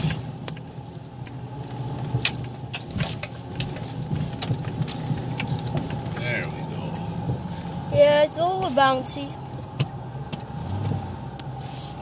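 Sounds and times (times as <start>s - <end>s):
sharp rattles and clicks: 0.0s - 7.4s
vehicle engine humming: 0.0s - 12.0s.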